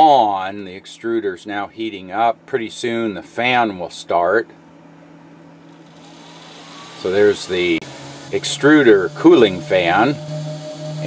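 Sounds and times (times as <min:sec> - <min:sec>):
cooling fan whine rising: 0:00.0 - 0:11.0
low steady hum: 0:00.0 - 0:11.0.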